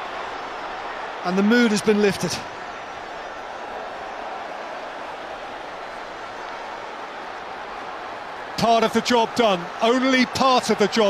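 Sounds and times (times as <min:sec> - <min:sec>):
stadium crowd noise: 0:00.0 - 0:11.0
match commentary: 0:01.2 - 0:02.5, 0:08.6 - 0:11.0.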